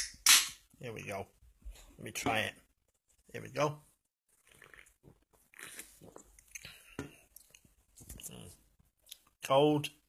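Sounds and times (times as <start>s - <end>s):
person sipping from can: 4.4s - 7.6s
gulps and swallows: 4.4s - 9.3s.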